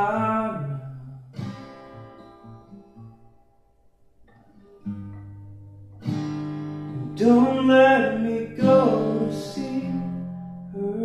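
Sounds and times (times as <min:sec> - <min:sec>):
acoustic guitar chord strummed: 0:00.0 - 0:11.0
acoustic guitar picked notes: 0:00.0 - 0:11.0.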